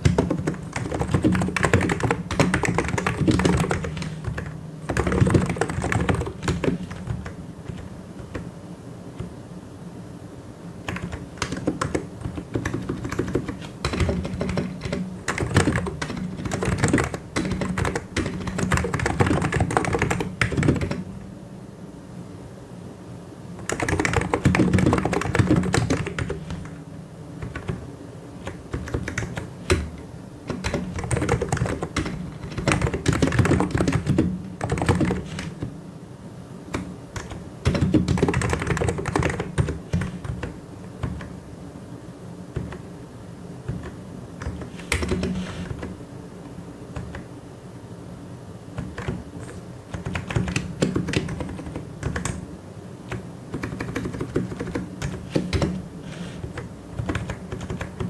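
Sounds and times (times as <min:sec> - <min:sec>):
mechanical keyboard typing: 0:00.0 - 0:08.5, 0:10.9 - 0:21.0, 0:23.6 - 0:26.7, 0:27.4 - 0:27.8, 0:28.4 - 0:35.7, 0:36.7 - 0:41.3, 0:43.7 - 0:45.9, 0:48.8 - 0:52.4, 0:53.1 - 0:58.0.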